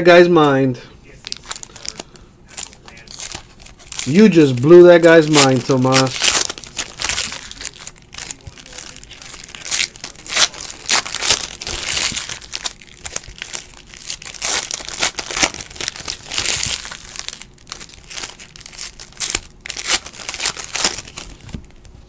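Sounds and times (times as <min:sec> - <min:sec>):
foil wrappers crinkling and tearing: 0:00.5 - 0:21.9.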